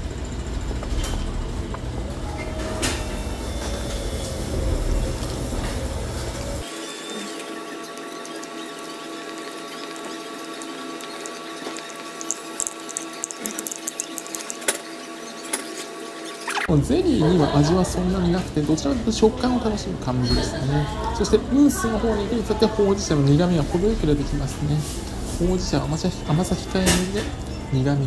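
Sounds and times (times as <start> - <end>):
low rumbling noise: 0.0 - 6.6.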